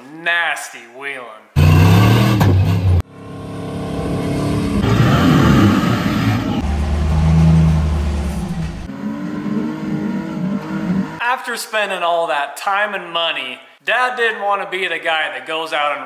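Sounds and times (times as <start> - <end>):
off-road engines revving: 1.6 - 11.2.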